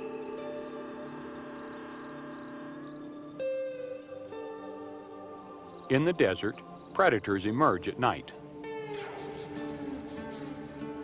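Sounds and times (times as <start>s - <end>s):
cricket chirping: 0.0s - 3.1s, 5.6s - 5.9s, 6.6s - 7.0s, 9.1s - 10.9s.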